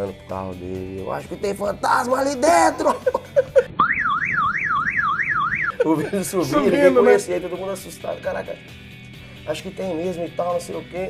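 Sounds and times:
car alarm siren: 0:03.7 - 0:05.9.

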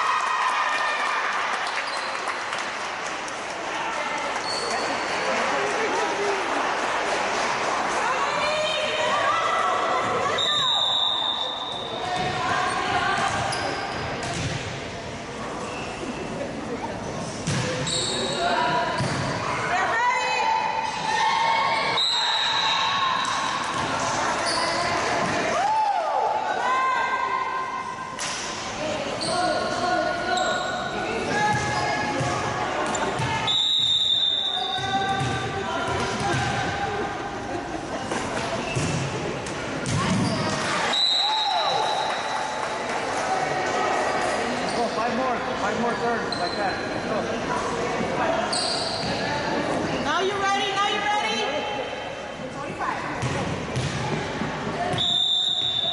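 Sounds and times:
sneakers squeaking on court: 0:10.0 - 0:14.6, 0:17.2 - 0:19.4, 0:38.0 - 0:39.2, 0:39.8 - 0:41.0, 0:48.5 - 0:49.4
volleyballs bouncing on gym floor: 0:11.7 - 0:14.8, 0:17.4 - 0:17.9, 0:31.3 - 0:34.0, 0:34.6 - 0:37.0, 0:38.2 - 0:40.8, 0:53.1 - 0:55.1.

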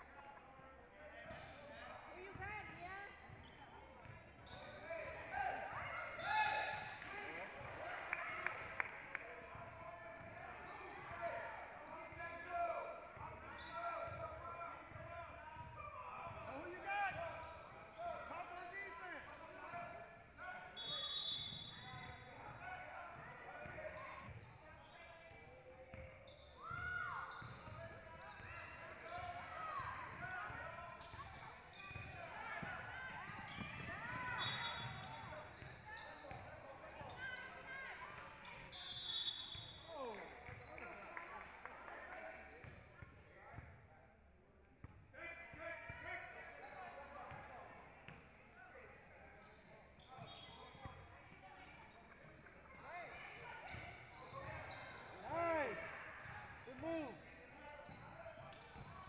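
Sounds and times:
sneakers squeaking: 0:01.3 - 0:07.0, 0:10.2 - 0:11.4, 0:16.3 - 0:40.9, 0:45.6 - 0:59.0.

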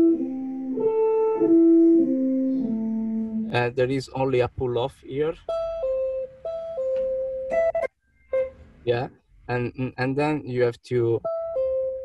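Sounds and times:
clean electric guitar fingerstyle: 0:00.0 - 0:03.7, 0:05.4 - 0:08.9, 0:11.2 - 0:12.0.

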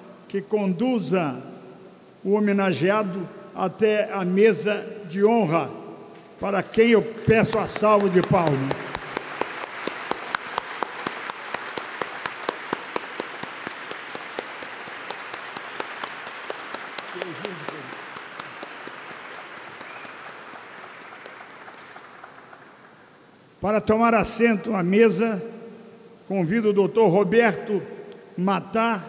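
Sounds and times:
audience applauding: 0:06.8 - 0:23.4.

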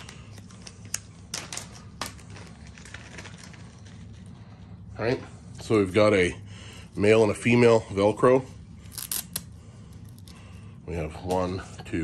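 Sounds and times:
plastic bags crinkling: 0:00.0 - 0:04.4
low steady hum: 0:00.0 - 0:12.0.

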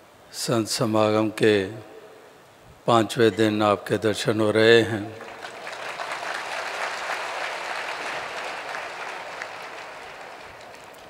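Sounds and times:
crowd applauding: 0:05.2 - 0:11.0.

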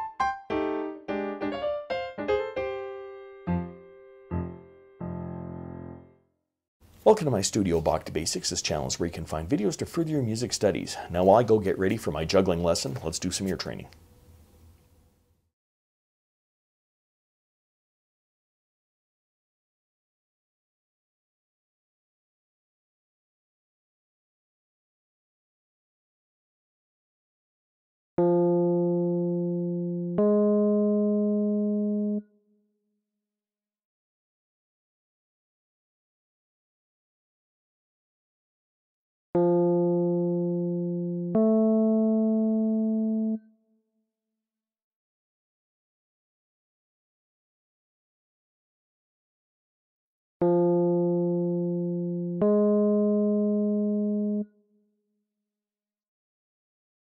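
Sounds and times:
keyboard notes: 0:00.0 - 0:06.2, 0:28.2 - 0:32.4, 0:39.4 - 0:43.6, 0:50.4 - 0:54.6.

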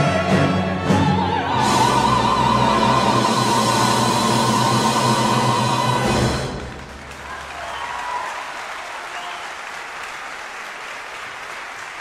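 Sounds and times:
orchestra and choir sustained chord: 0:00.0 - 0:06.9.

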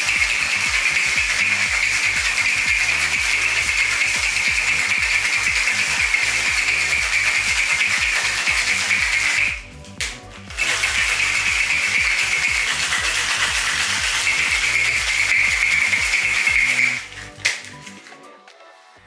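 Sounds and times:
ice rattling in cocktail shaker: 0:00.0 - 0:09.6, 0:10.5 - 0:18.1
electronic music with bass: 0:00.0 - 0:18.4.

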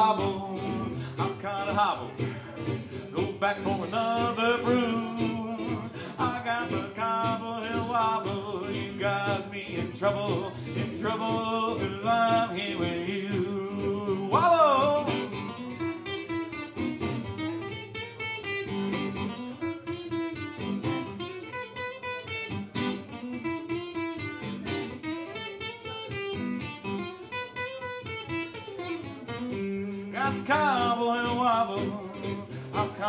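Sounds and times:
acoustic guitar strumming: 0:00.0 - 0:33.0.

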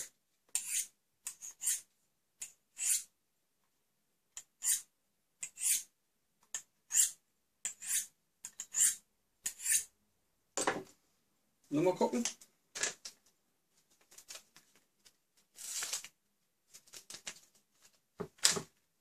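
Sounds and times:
knife blade scraping sharpening rod: 0:00.5 - 0:03.1, 0:04.6 - 0:05.9, 0:06.9 - 0:09.9.

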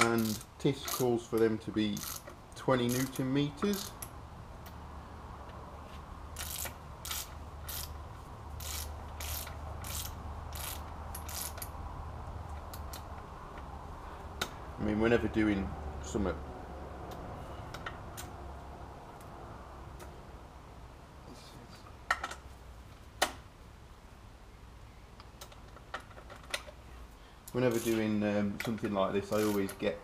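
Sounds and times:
torque wrench ratchet clicking: 0:00.0 - 0:01.1, 0:01.9 - 0:04.1, 0:06.4 - 0:08.0, 0:08.6 - 0:11.7, 0:27.7 - 0:28.0, 0:29.3 - 0:29.8.

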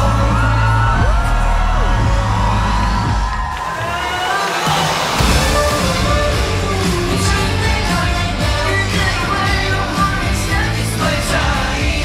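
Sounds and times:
crowd cheering and screaming: 0:00.0 - 0:12.0
live pop music with heavy bass: 0:00.0 - 0:12.0.

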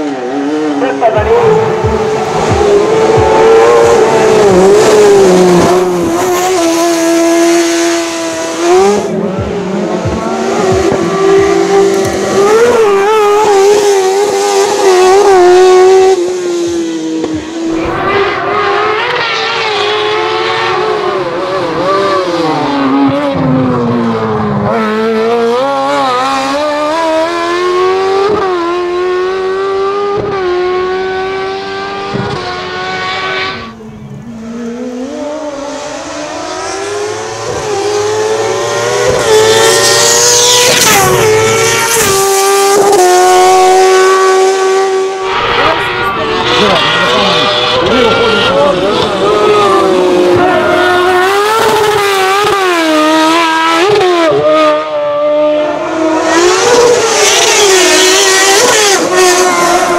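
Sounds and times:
racing car engine revving high: 0:00.0 - 0:59.9.

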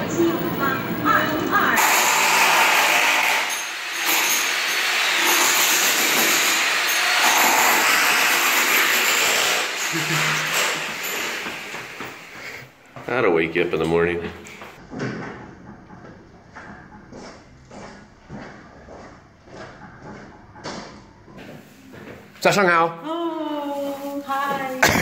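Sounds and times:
power tool grinding and drilling: 0:01.8 - 0:12.6.

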